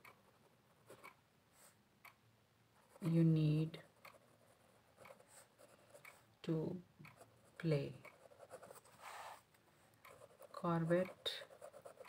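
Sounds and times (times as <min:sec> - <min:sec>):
pen scratching on paper: 0:04.0 - 0:06.2, 0:07.1 - 0:12.0.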